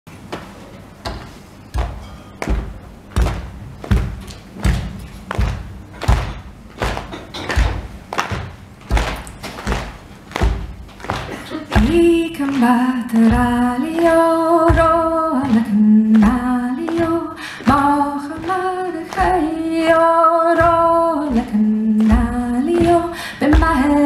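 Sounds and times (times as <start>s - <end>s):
audience thumping rhythm: 1.1s - 24.0s
woman singing: 11.5s - 24.0s.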